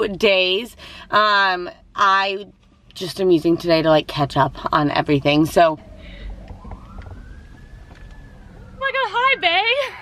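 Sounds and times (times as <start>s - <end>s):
low steady rumble: 0.0s - 10.0s
faint siren wailing: 5.3s - 10.0s.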